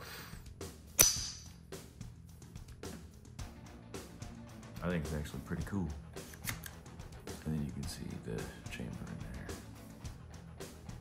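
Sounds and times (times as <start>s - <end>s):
background music with steady beat: 0.0s - 11.0s
pistol slide metallic snap: 1.0s - 1.5s, 6.3s - 6.8s.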